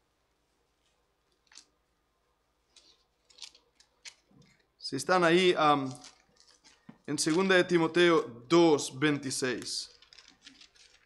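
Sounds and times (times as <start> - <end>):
thin pages rustling: 9.5 - 11.0.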